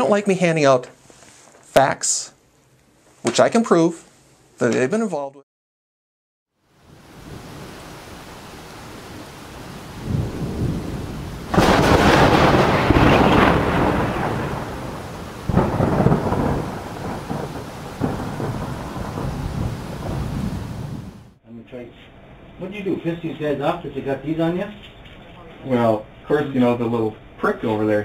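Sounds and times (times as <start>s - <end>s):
steady rain: 6.6s - 21.4s
rolling thunder: 8.9s - 21.4s
loud thunderclap: 10.0s - 21.4s.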